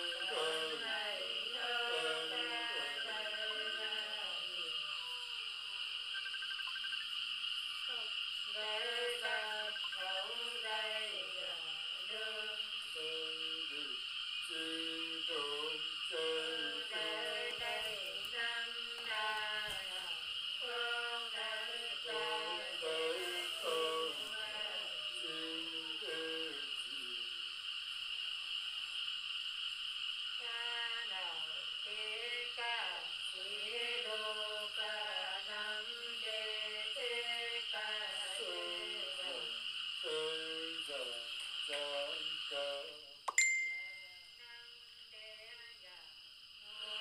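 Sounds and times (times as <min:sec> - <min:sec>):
woman singing folk song: 0:00.0 - 0:04.8, 0:07.9 - 0:26.8, 0:30.4 - 0:43.0, 0:44.4 - 0:46.0.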